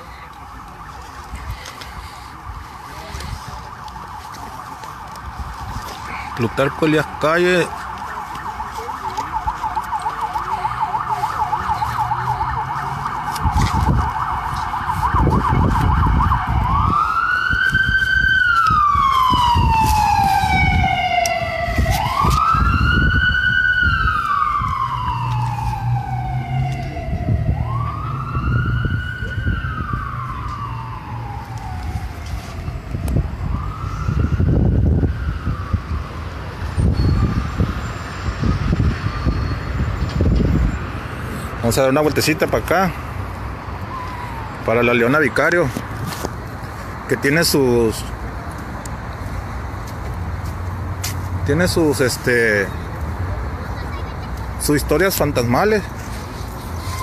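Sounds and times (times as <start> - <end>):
emergency vehicle siren: 0.0 - 53.6, 54.4 - 57.0.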